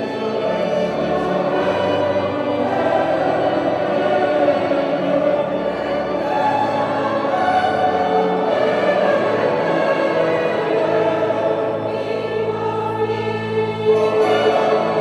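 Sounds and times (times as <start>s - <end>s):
mixed choir singing: 0.0s - 15.0s
string orchestra: 0.0s - 15.0s.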